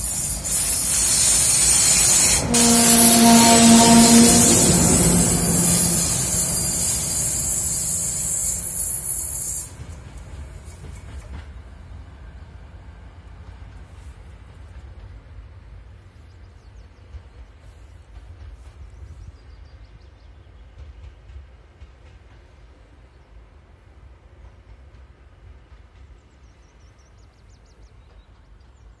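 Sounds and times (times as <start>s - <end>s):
diesel locomotive droning: 0.0s - 19.2s.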